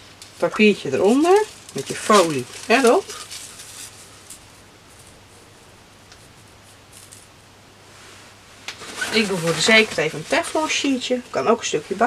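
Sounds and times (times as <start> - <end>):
paper and foil rustling: 0.0 - 7.4, 8.8 - 12.0
low steady hum: 0.0 - 12.0.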